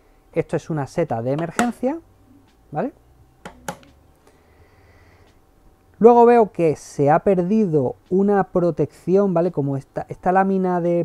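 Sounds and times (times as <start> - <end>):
faint low hum: 0.0 - 10.2.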